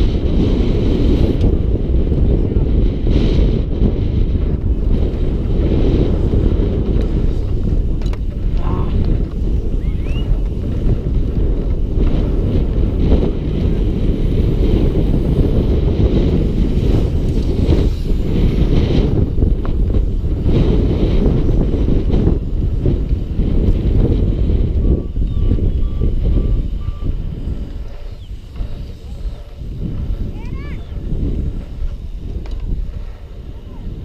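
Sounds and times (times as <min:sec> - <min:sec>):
bike tyres rolling: 0:00.0 - 0:34.0
wind buffeting microphone: 0:00.0 - 0:34.0.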